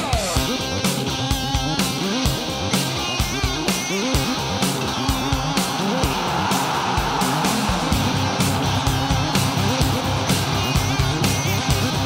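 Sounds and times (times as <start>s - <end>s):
rock music with electric guitar: 0.0s - 12.0s
steady drum beat: 0.4s - 12.0s.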